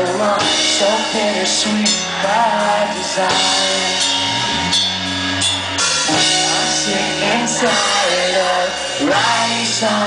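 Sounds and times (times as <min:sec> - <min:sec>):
drum kit: 0:00.0 - 0:10.0
live pop-punk band playing: 0:00.0 - 0:10.0.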